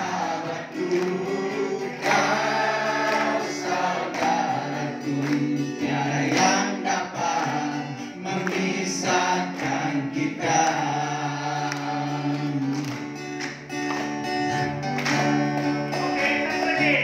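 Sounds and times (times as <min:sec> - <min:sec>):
hands clapping: 0:00.0 - 0:10.9, 0:11.6 - 0:16.9
congregation singing worship song: 0:00.0 - 0:13.7.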